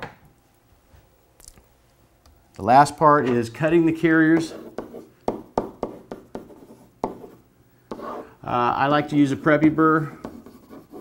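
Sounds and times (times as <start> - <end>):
marker writing on a whiteboard: 4.3 - 8.2, 9.0 - 11.0.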